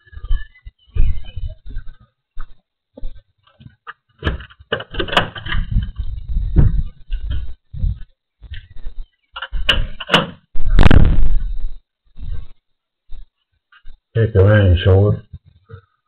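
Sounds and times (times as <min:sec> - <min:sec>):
front door opening and shutting: 0:04.2 - 0:06.0, 0:09.4 - 0:10.5
door thud and rumble: 0:04.2 - 0:07.5.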